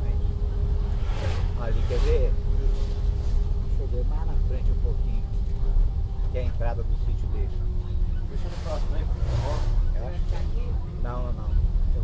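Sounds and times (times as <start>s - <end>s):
bus engine and road rumble: 0.0s - 12.0s
muffled voices talking: 0.0s - 12.0s.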